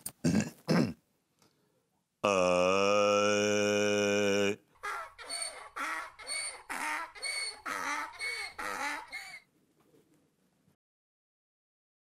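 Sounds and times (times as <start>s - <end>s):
man singing off-key: 2.2s - 4.6s.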